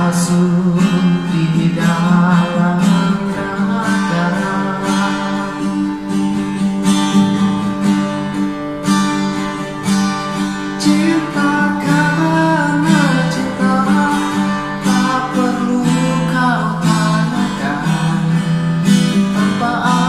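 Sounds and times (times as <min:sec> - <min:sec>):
classical guitar strummed: 0:00.0 - 0:20.0.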